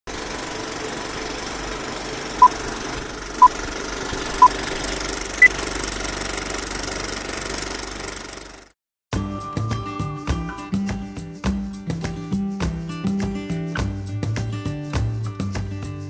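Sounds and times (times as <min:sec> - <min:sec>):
film projector rattle: 0:00.1 - 0:08.7.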